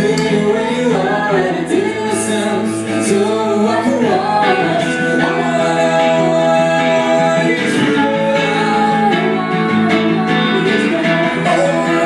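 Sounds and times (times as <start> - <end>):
electric guitar: 0.0 - 12.0
man singing: 0.0 - 12.0.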